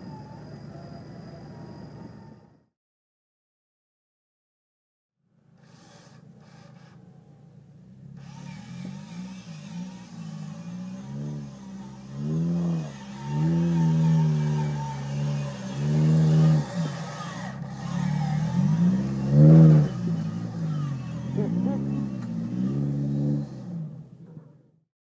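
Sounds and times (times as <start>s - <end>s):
jeep engine revving hard: 7.9s - 24.2s.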